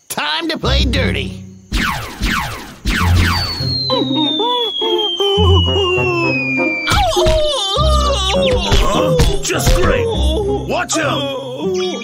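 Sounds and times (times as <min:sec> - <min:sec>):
background music: 0:00.6 - 0:03.9, 0:05.4 - 0:12.0
cartoon falling whistle: 0:01.7 - 0:10.0.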